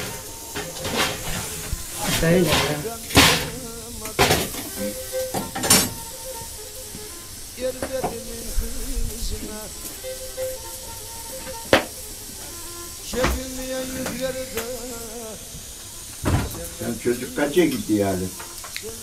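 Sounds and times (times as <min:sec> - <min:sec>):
sharp metal clanks: 0:00.0 - 0:06.0
metal poker scraping wood stove: 0:00.0 - 0:06.1
faint music: 0:00.0 - 0:19.0.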